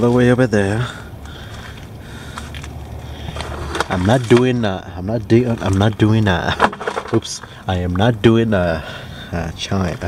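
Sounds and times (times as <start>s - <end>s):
steady low rumble: 0.0s - 10.0s
person speaking: 3.4s - 10.0s.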